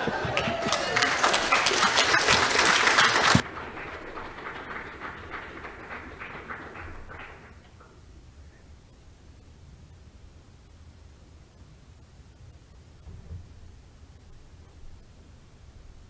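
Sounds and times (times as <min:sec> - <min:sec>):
congregation applauding: 0:00.0 - 0:07.8.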